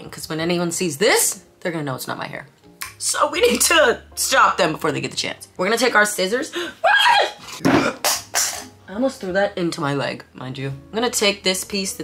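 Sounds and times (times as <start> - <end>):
woman's startled cry: 6.8 - 7.4.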